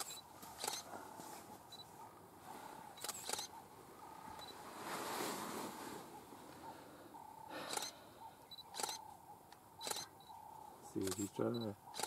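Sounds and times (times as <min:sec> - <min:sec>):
camera shutter clicking: 0:00.0 - 0:00.8, 0:03.0 - 0:03.5, 0:07.7 - 0:07.9, 0:08.7 - 0:09.0, 0:09.8 - 0:10.1, 0:11.0 - 0:11.3
faint bush background: 0:00.0 - 0:12.0.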